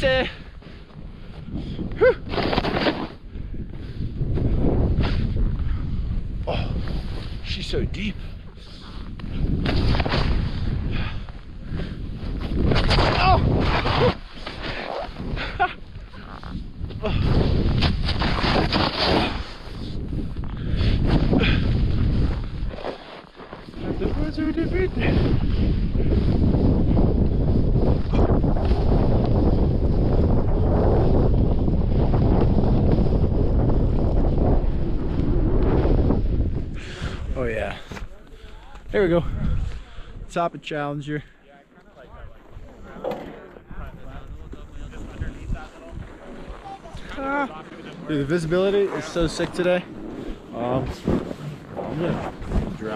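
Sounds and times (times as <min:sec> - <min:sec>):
wind on camera microphone: 0:00.0 - 0:40.3, 0:42.1 - 0:52.9
snowboard carving powder snow: 0:06.9 - 0:10.8, 0:12.1 - 0:20.3, 0:20.9 - 0:37.7, 0:47.5 - 0:52.9.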